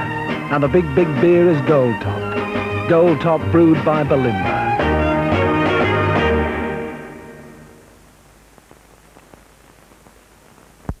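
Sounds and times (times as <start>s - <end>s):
old soundtrack hiss: 0.0s - 11.0s
crackles: 7.8s - 11.0s.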